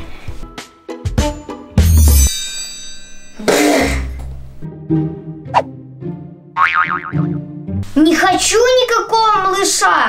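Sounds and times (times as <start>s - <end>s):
background music: 0.0s - 2.3s, 3.5s - 9.1s
cartoon boing sound effect: 6.6s - 7.4s.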